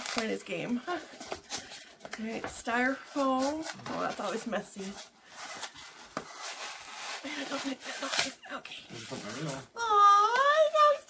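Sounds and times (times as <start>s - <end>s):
styrofoam scraping against cardboard: 3.1s - 9.7s.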